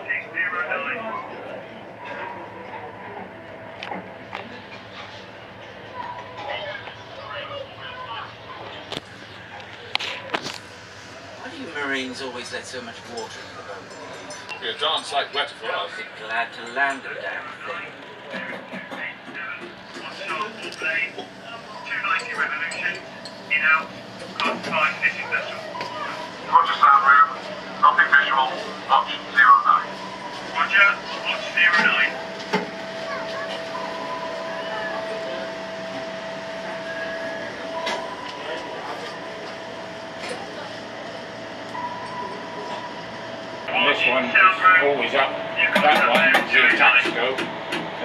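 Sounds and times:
indistinct voices talking: 0.0 - 48.0
steady background hum: 0.0 - 48.0.

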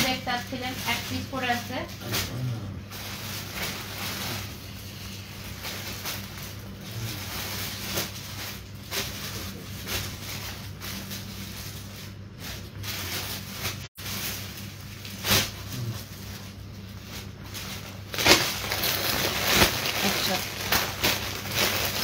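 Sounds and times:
plastic bags rustling: 0.0 - 22.0
steady low hum: 0.0 - 22.0.

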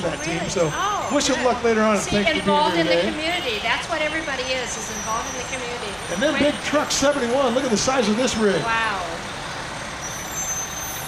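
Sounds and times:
diesel truck engine running: 0.0 - 11.0
street noise: 0.0 - 11.0.

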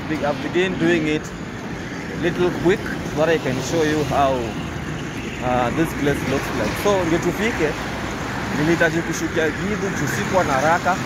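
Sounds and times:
traffic: 0.0 - 11.0
vehicle road noise: 0.0 - 11.0
person talking: 5.4 - 7.8.

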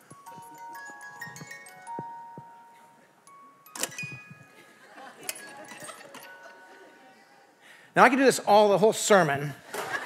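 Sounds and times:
wind-up music box tune: 0.0 - 2.5, 3.3 - 4.6, 5.2 - 6.8.

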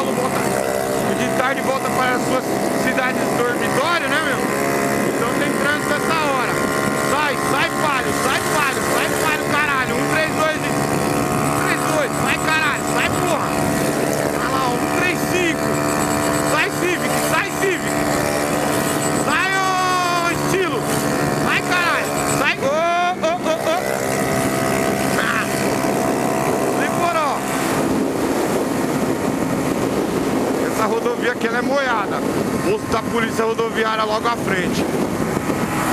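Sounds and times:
motorcycle engine at high revs: 0.0 - 35.9
wind rushing over microphone: 0.0 - 35.9.

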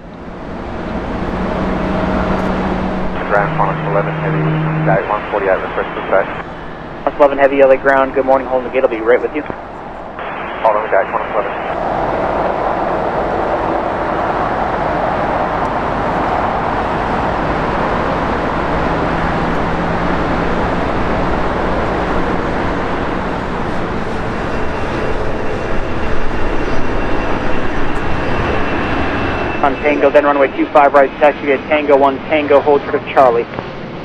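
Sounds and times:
jet engines roaring: 0.0 - 34.0
thin high whine: 0.8 - 32.7.

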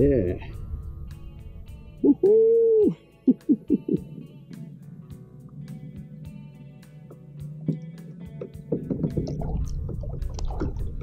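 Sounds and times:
guitar music: 0.0 - 11.0.

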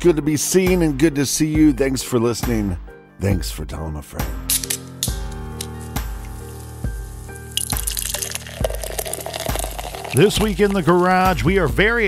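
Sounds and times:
background music with slow beat: 0.0 - 12.0
beer pouring into a glass: 6.2 - 10.8.

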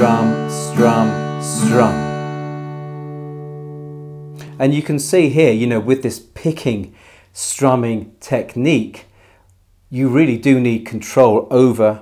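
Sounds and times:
acoustic guitar chord ringing: 0.0 - 4.6.

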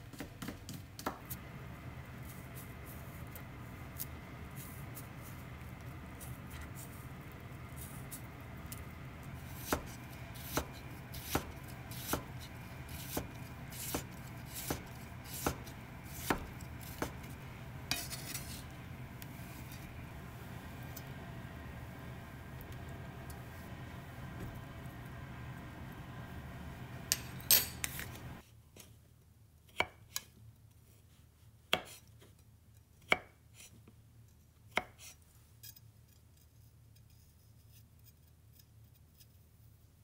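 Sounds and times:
knife chopping on wooden board: 9.4 - 18.6
knife blade scraping board: 9.4 - 20.0.

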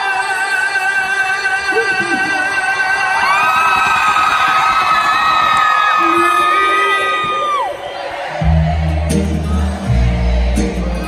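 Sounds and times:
crowd cheering and whooping: 2.9 - 11.0
high-pitched screams: 3.0 - 8.2.

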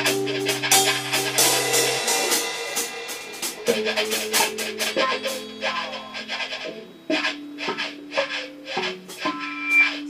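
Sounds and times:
drum kit hits: 0.0 - 6.1
electric guitar: 0.0 - 10.0.

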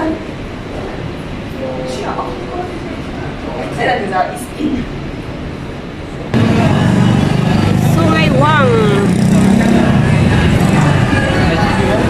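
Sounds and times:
road traffic: 4.4 - 12.0
voices: 6.2 - 12.0.

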